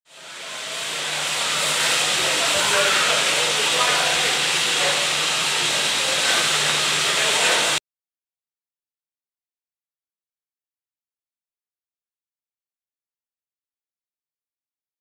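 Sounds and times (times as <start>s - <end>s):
steam hissing: 0.1s - 7.8s.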